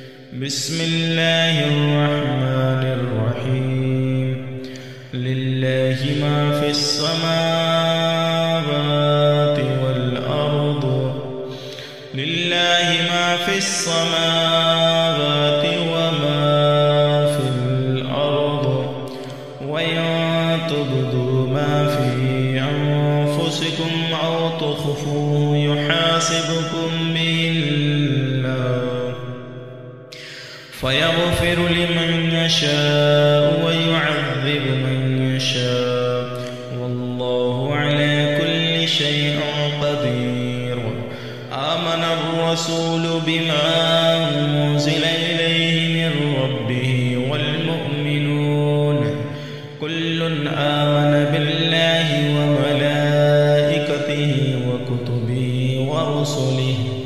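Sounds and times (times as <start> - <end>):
man chanting melodically: 0.0 - 57.0.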